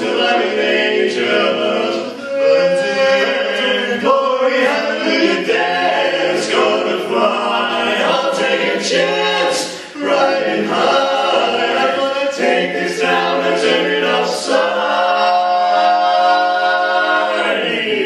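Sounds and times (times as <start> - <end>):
male quartet singing a cappella: 0.0 - 18.0.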